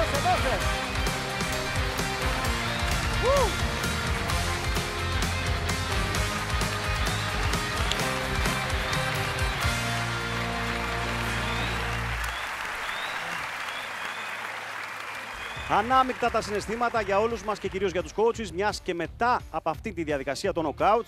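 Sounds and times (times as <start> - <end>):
upbeat live band music: 0.0 - 11.7
audience applauding: 0.0 - 18.3
short whistles: 11.4 - 14.4.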